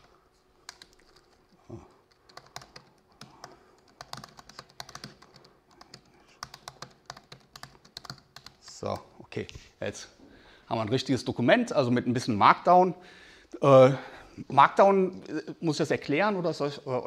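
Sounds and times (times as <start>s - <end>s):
laptop keyboard typing: 0.0s - 9.0s.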